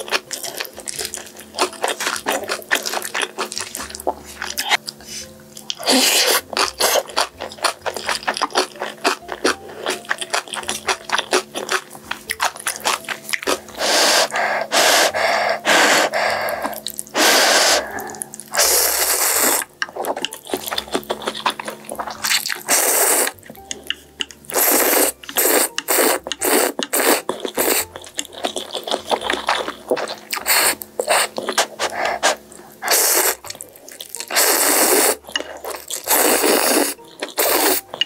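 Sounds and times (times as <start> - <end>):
slurping noodles: 13.5 - 20.6, 21.4 - 23.4, 24.5 - 38.0
wet clicky chewing: 19.6 - 38.0.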